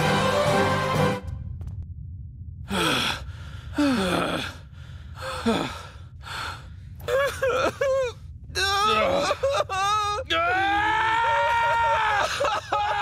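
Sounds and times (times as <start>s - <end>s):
low steady hum: 1.1s - 13.0s.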